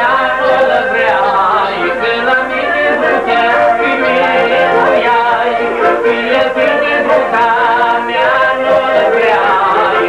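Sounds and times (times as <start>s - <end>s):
man singing a folk song: 0.0s - 10.0s.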